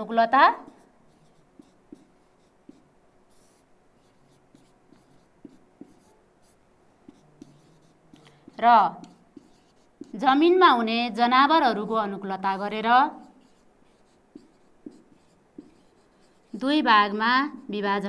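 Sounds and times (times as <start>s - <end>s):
marker writing on whiteboard: 0.0s - 10.9s, 11.7s - 17.9s.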